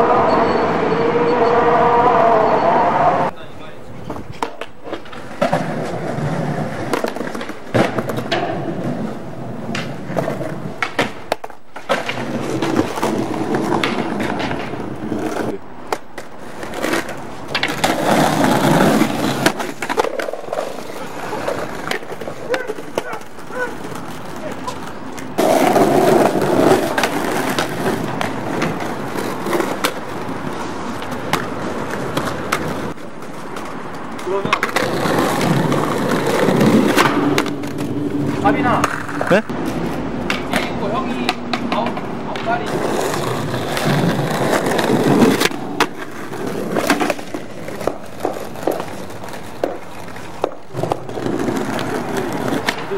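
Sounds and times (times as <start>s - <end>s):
skateboard wheels rolling: 0.0s - 52.9s
skateboards clacking on stone: 3.8s - 52.9s.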